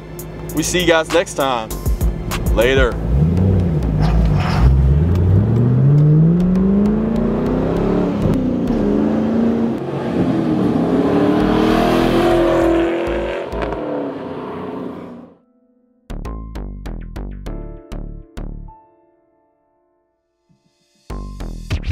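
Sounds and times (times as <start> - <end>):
car engine accelerating: 0.0 - 15.4.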